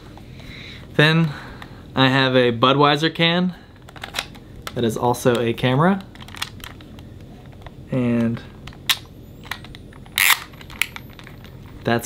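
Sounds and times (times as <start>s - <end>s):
camera flash charging whine: 10.1s - 11.1s.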